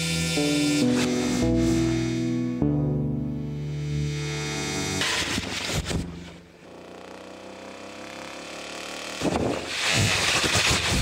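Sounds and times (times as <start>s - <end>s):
electronic music tones: 0.0s - 5.4s
low hum: 0.0s - 6.8s.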